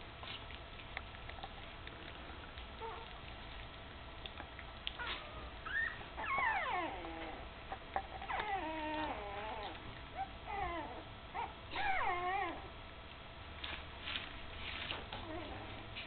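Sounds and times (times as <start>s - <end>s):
puppies whining: 1.4s - 3.6s, 4.5s - 12.7s, 15.2s - 16.0s.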